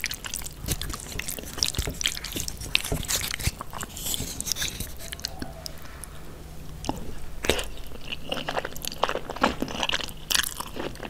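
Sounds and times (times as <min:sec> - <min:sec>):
wet sticky noodle eating: 0:00.0 - 0:11.0.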